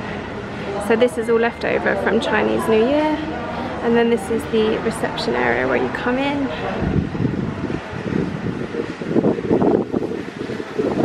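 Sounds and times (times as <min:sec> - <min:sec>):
wind buffeting microphone: 0:03.3 - 0:11.0.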